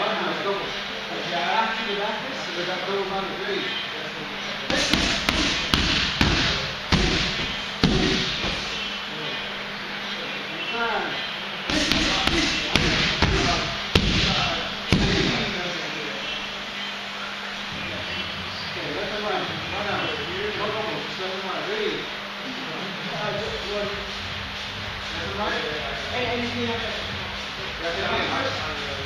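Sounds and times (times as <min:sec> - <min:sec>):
gloved strikes smacking pads: 0:04.7 - 0:08.7, 0:11.7 - 0:15.4.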